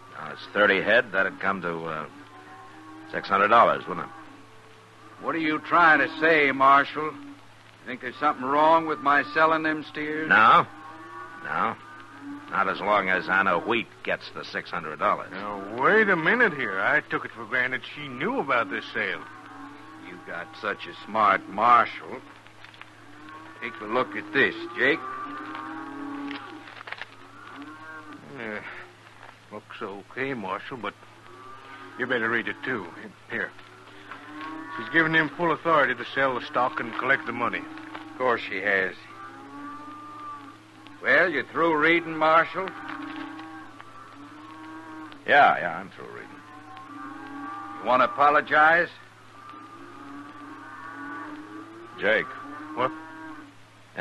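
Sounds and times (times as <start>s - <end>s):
cattle mooing: 0.0s - 54.0s
people talking: 0.1s - 2.1s, 3.1s - 4.1s, 5.2s - 7.2s, 7.9s - 10.7s, 11.4s - 11.8s, 12.5s - 19.2s, 20.0s - 22.3s, 23.6s - 25.0s, 28.2s - 28.8s, 29.5s - 30.9s, 32.0s - 33.6s, 34.7s - 39.1s, 41.0s - 42.7s, 45.3s - 46.4s, 47.8s - 49.0s, 52.0s - 53.0s.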